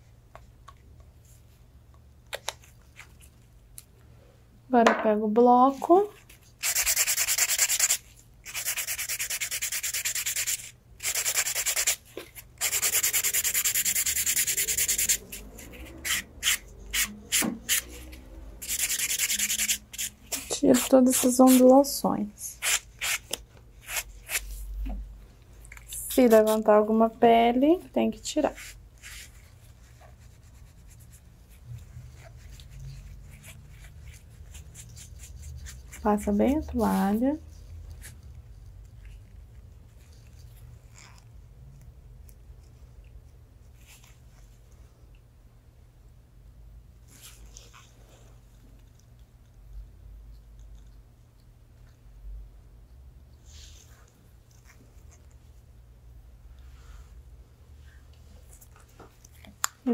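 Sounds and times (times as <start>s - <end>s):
nail buffer rubbing nail: 6.6s - 21.8s, 22.5s - 24.5s, 28.5s - 37.1s.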